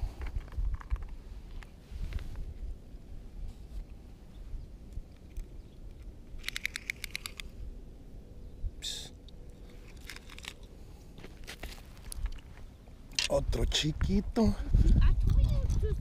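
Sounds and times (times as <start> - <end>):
tape measure clicking: 6.4 - 7.5
crunches on gravel: 9.6 - 13.4.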